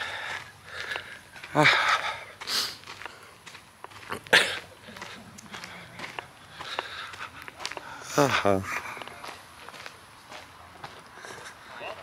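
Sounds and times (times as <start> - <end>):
sharp breath through nose: 1.8 - 3.4.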